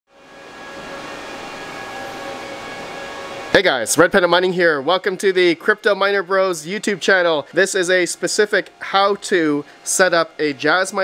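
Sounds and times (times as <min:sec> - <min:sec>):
cooling fans whirring: 0:00.1 - 0:11.0.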